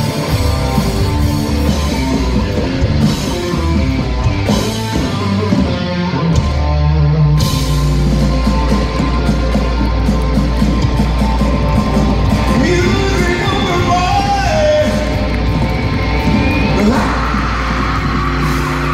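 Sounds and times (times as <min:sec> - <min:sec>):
live rock band playing: 0:00.0 - 0:18.9.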